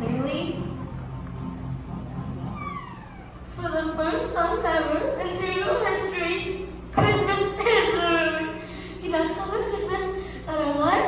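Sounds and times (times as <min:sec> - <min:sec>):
soft background music: 0:00.0 - 0:06.6
high cry falling in pitch: 0:02.5 - 0:03.4.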